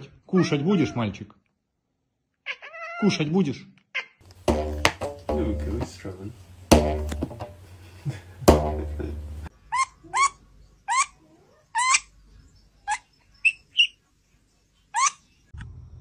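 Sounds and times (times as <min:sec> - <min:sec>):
loud thump with ringing tail: 0:04.5 - 0:06.1, 0:06.7 - 0:07.6, 0:08.5 - 0:09.5
weasel squeaking: 0:09.6 - 0:12.2, 0:12.8 - 0:14.0, 0:14.9 - 0:15.3.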